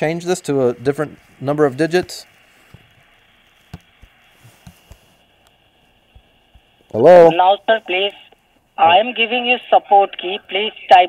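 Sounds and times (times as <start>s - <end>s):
telephone line hiss: 0.0s - 11.0s.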